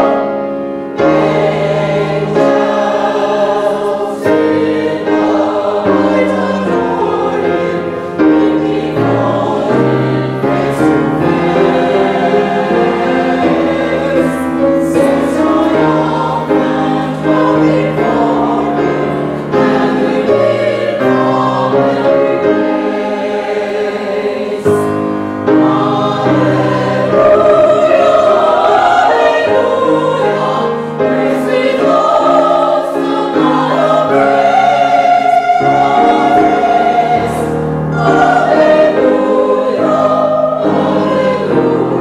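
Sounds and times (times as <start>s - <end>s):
church choir singing: 0.0s - 42.0s.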